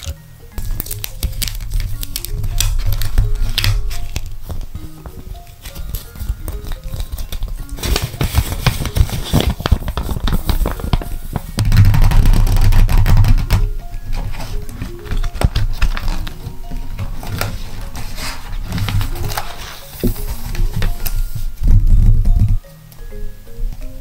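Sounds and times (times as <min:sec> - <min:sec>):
paper crinkling and rustling: 0:00.0 - 0:22.1
light background music: 0:00.0 - 0:24.0
hands tapping notebook cover: 0:01.2 - 0:16.4.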